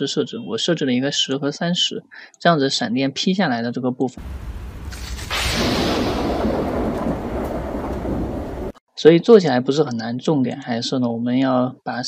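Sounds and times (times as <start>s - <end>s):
heavy rain hiss: 4.2s - 8.7s
thunder rumble: 4.2s - 8.8s.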